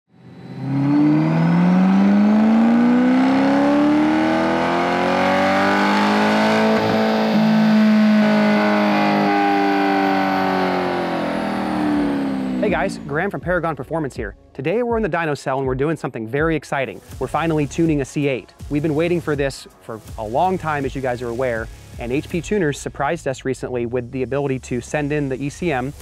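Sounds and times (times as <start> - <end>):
car engine revving on a dyno: 0.1 - 13.1.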